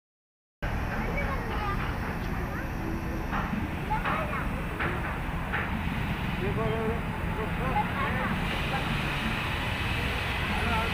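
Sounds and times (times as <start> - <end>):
steady low rumble: 0.6 - 10.9.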